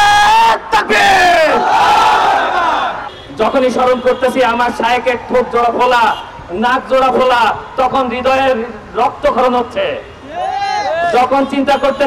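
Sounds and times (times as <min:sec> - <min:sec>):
man shouting into a microphone: 0:00.0 - 0:01.8, 0:03.3 - 0:12.0
crowd of men chanting: 0:01.0 - 0:03.1.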